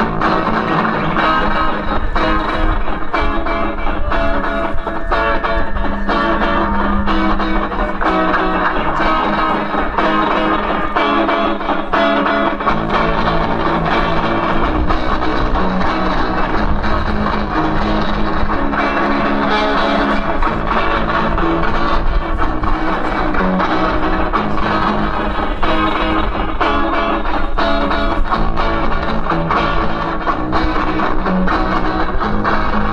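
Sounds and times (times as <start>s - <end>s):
drums: 0.0s - 32.9s
electric guitar through amplifier: 0.0s - 32.9s.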